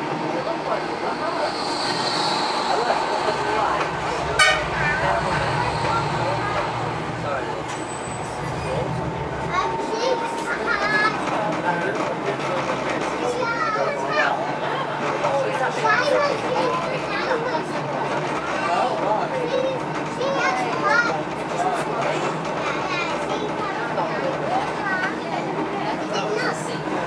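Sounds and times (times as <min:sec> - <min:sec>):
passengers chattering: 0:00.0 - 0:27.0
tram running rumble: 0:00.0 - 0:27.0.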